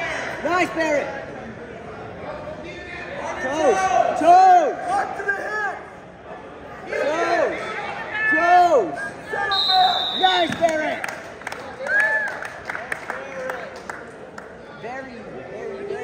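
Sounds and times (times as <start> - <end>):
short high whistle: 9.5 - 10.4.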